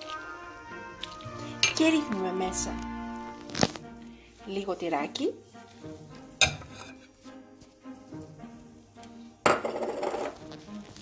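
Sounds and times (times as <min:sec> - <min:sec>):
background music: 0:00.0 - 0:11.0
spatula scraping in pot: 0:05.5 - 0:07.1.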